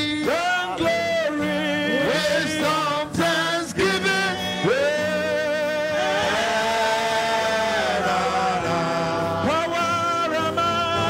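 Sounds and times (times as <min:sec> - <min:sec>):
congregation singing a worship song: 0:00.0 - 0:11.0.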